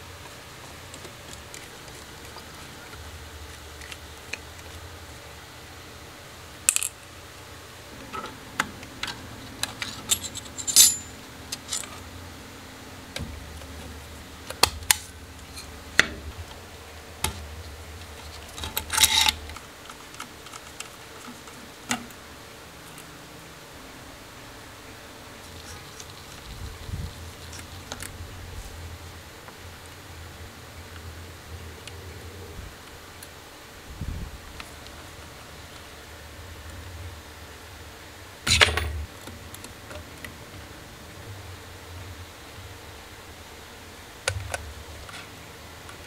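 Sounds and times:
parts rattling: 9.6 - 12.0.

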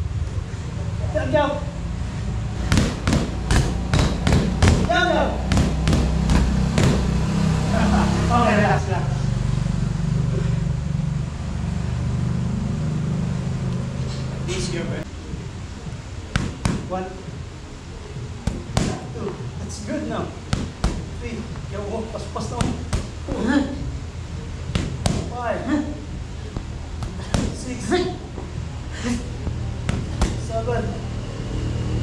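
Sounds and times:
low hum: 0.0 - 32.0
boxing gloves hitting focus mitts: 2.6 - 7.2, 16.3 - 16.9, 18.4 - 19.3, 20.5 - 21.2, 22.4 - 23.5, 24.7 - 25.4, 26.6 - 27.7, 29.8 - 30.5.

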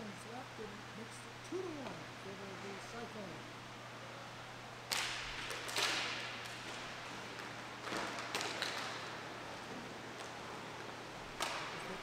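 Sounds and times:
steady low hum: 0.0 - 12.0
hockey sticks clacking: 4.9 - 12.0.

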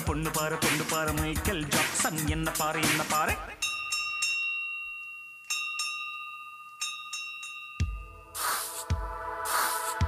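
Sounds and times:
bell chime ringing: 3.6 - 8.4.

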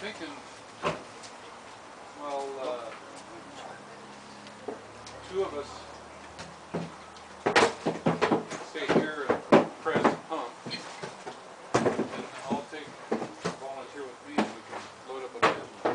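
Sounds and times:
sharp knocks: 6.4 - 13.7.

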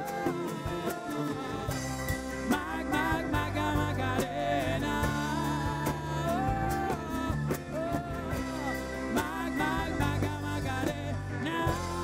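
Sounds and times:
live band playing: 0.0 - 12.0
person singing lead vocal: 0.0 - 12.0.

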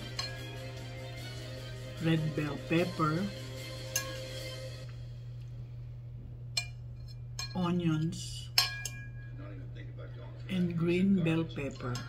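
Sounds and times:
fork clinking on ceramic plate: 0.0 - 0.6, 3.9 - 4.4, 6.6 - 7.7, 8.5 - 9.4.

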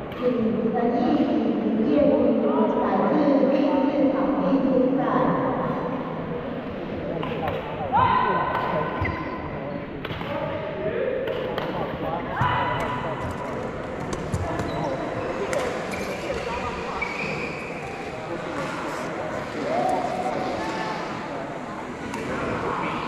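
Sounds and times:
voices in echoing hall: 0.0 - 23.0
wheelchair tyres squealing: 16.9 - 17.9.

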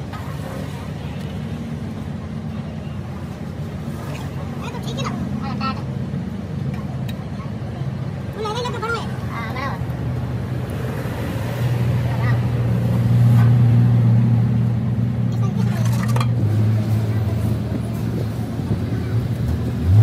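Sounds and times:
engine humming steadily: 0.0 - 20.0.

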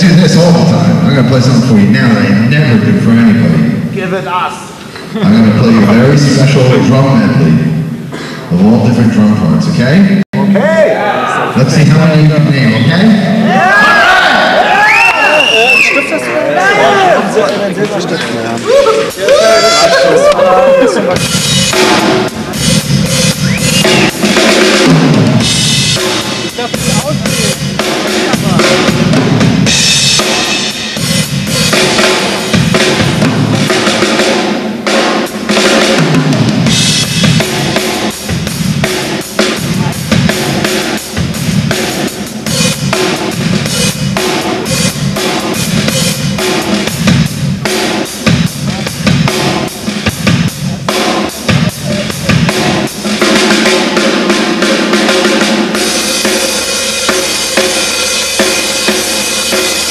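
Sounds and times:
bass drum: 18.7 - 59.9
cymbals: 18.7 - 59.9
snare drum: 21.1 - 59.9.

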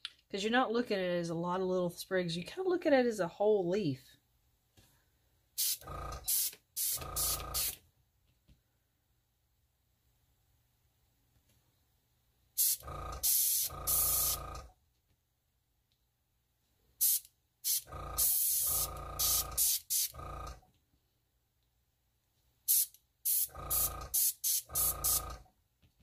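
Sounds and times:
airbrush hissing bursts: 5.6 - 7.8, 12.6 - 14.6, 17.0 - 20.2, 22.7 - 25.4.

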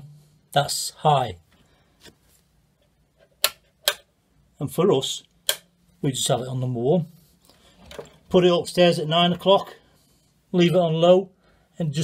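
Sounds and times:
rocker switch clicks: 3.4 - 4.1, 5.4 - 5.7.

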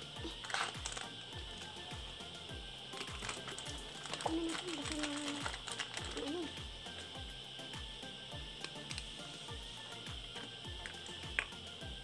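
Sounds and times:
background music with low beat: 0.0 - 12.0
plastic packet crinkling: 0.2 - 1.1, 2.9 - 6.4.

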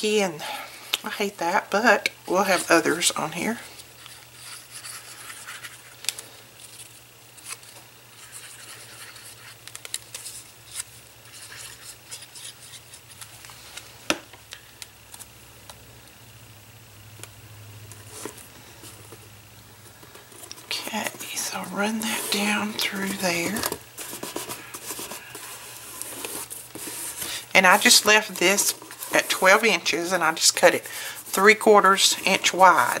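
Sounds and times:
paper rubbing and rustling: 2.4 - 6.0, 6.6 - 13.7, 19.9 - 33.0.

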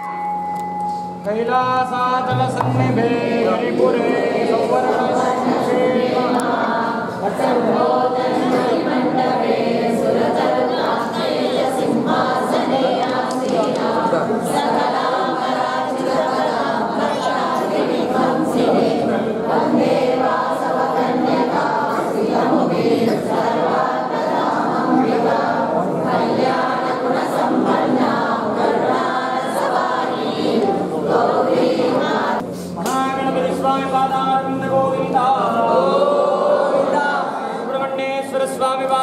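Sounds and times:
crowd singing a hymn: 1.9 - 38.9.

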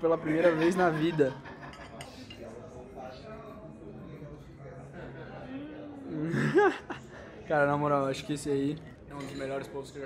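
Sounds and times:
faint background voices talking: 0.0 - 10.0.

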